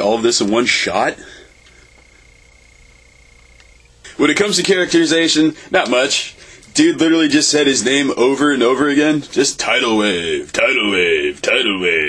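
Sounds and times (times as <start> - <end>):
faint high-pitched whine: 0.0 - 12.0
low hum: 0.0 - 12.0.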